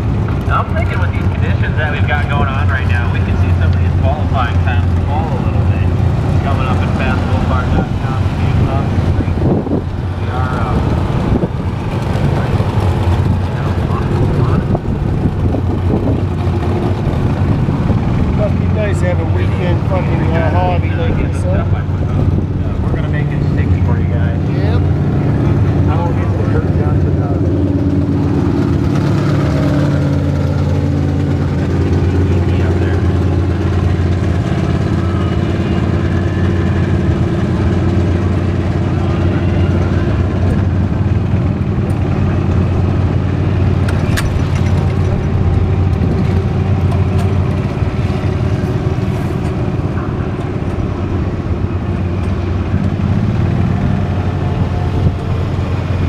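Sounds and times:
small vehicle engine running: 0.0 - 56.0.

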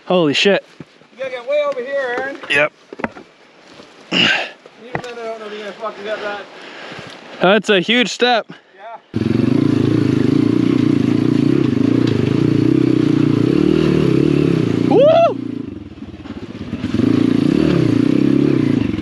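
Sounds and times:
dirt bike engine revving: 9.2 - 19.0
person shouting: 14.8 - 15.4.

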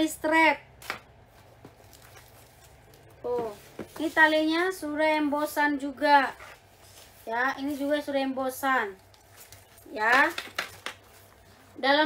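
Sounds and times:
plastic wrapping rustling: 0.8 - 4.9, 6.1 - 12.0.

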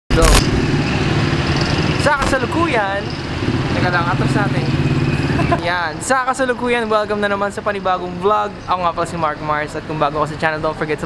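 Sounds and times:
vehicle engine rumbling: 0.1 - 10.6
person speaking: 2.1 - 2.6.

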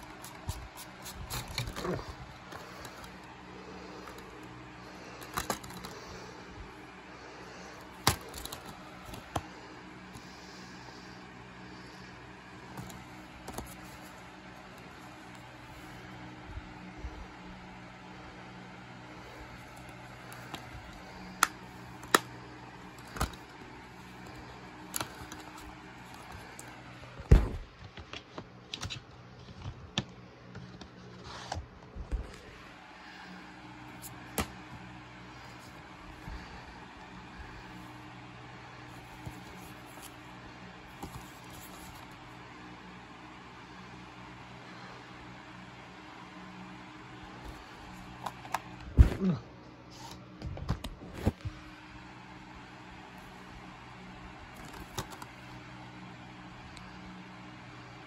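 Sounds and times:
low background hum: 0.0 - 58.0.

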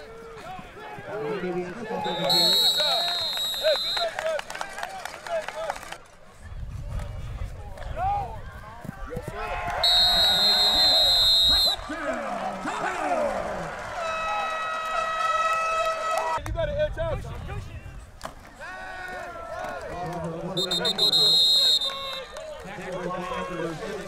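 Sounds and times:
referee's whistle blast: 2.0 - 4.2, 9.8 - 11.8, 20.6 - 22.3.

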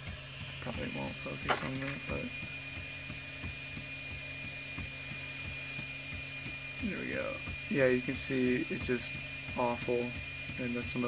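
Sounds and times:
printer motor and fan hum: 0.0 - 11.0.

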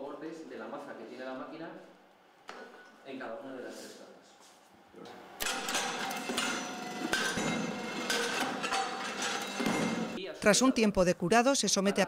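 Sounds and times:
machine ramming knocks: 5.4 - 10.2.

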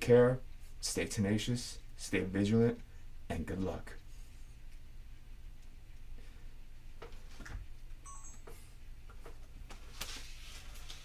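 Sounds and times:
electronic beep: 8.1 - 8.5.

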